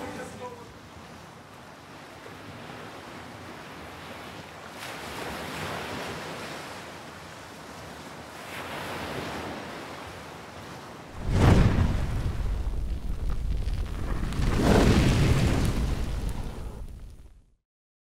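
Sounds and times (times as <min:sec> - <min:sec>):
loud deep boom: 0:11.2 - 0:17.2
soft rushing whooshes: 0:11.2 - 0:17.3.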